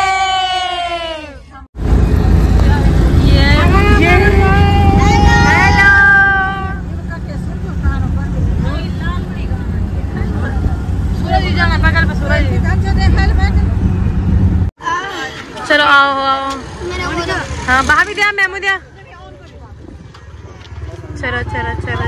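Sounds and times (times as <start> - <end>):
vehicle rumble from inside cabin: 1.8 - 14.7
passengers calling out: 2.7 - 7.9.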